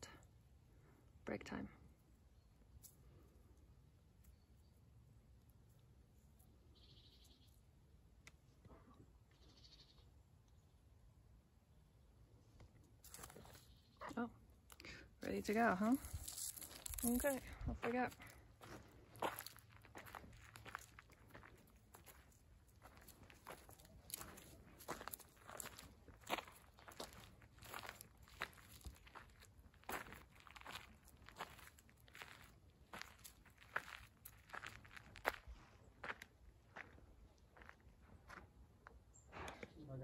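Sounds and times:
footsteps on gravel and leaves: 13.0s - 13.8s, 15.4s - 37.0s.

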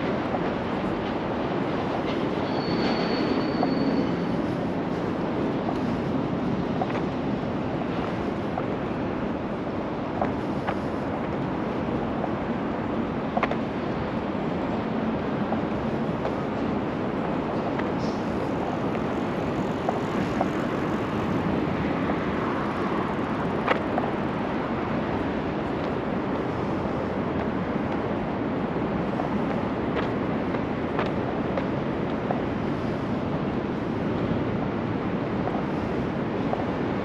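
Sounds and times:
outdoor background noise: 0.0s - 37.0s.

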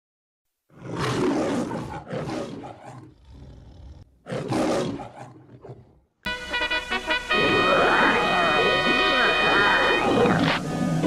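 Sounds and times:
lion roaring: 0.7s - 6.0s, 9.2s - 11.0s.

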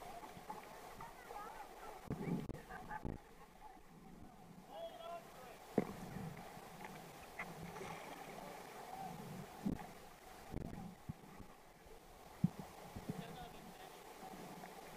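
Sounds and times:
paddle knocks: 5.7s - 6.5s.

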